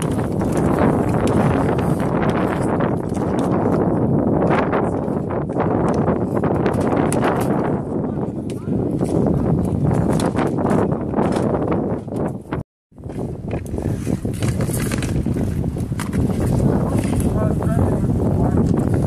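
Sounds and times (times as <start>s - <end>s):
hockey sticks and puck clicking: 0.0s - 4.7s, 5.7s - 7.7s, 13.4s - 15.3s
inline skates on rink: 0.0s - 7.7s, 8.5s - 17.6s
wind noise on microphone: 0.0s - 19.0s.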